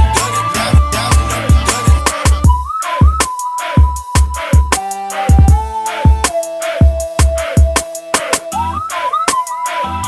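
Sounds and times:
kick drums: 0:00.0 - 0:03.2, 0:03.8 - 0:07.8
whistle-like synth tone: 0:00.0 - 0:10.0.

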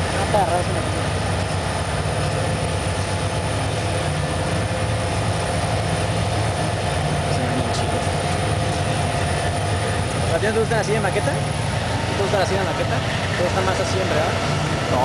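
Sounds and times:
diesel locomotive drone: 0:00.0 - 0:15.0
train wheels rumbling on rail: 0:00.0 - 0:15.0.

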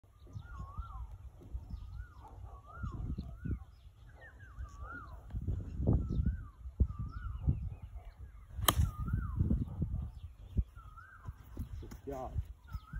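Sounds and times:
wind rumble on microphone: 0:00.0 - 0:12.9
bird calling: 0:00.1 - 0:12.9
golf club striking ball: 0:08.6 - 0:09.0.

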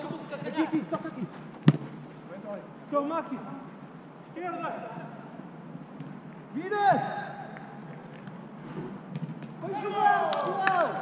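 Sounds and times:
football kicked: 0:01.6 - 0:02.0.

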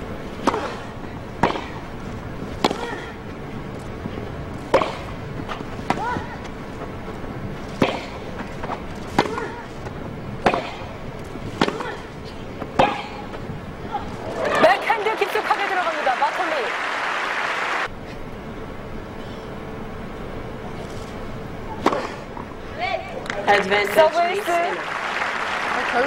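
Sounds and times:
tennis ball hit with rackets: 0:00.4 - 0:01.9, 0:02.5 - 0:03.2, 0:04.6 - 0:06.6, 0:07.8 - 0:13.4.

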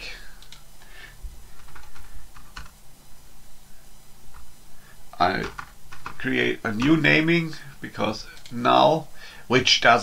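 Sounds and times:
computer keyboard typing: 0:01.6 - 0:02.8, 0:05.4 - 0:07.0.

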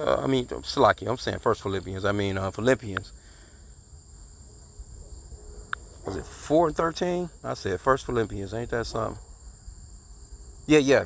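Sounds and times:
faint high-pitched whine: 0:00.0 - 0:11.0.

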